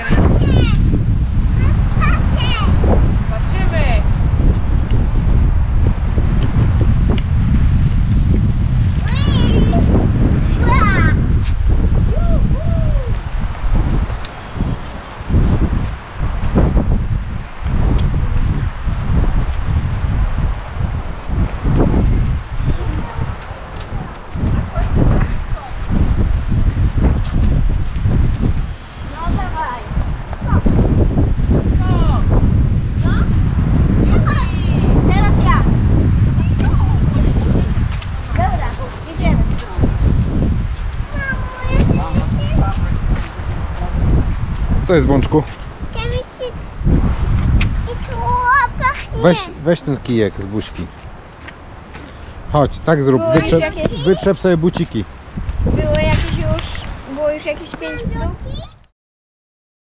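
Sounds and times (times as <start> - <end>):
wind buffeting microphone: 0.0 - 58.9.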